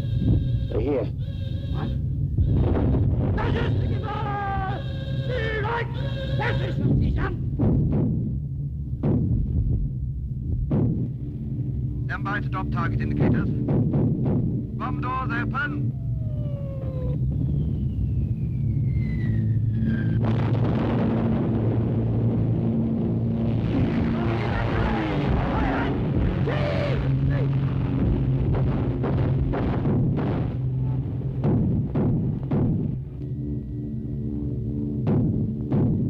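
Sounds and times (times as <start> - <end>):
bomber engines droning: 10.2 - 36.0
falling bomb whistles: 16.9 - 20.6
explosions: 19.8 - 33.1.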